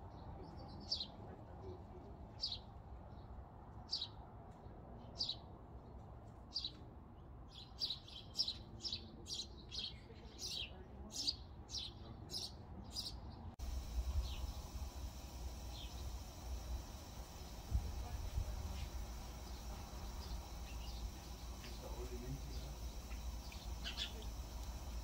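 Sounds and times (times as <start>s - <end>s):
bird chirping: 7.5s - 25.0s
steady hiss with low rumble: 13.6s - 25.0s.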